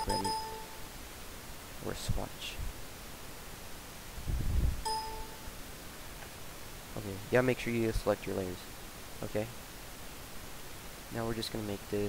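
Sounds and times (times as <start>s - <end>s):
computer error chime: 0.0s - 0.9s, 4.9s - 5.5s.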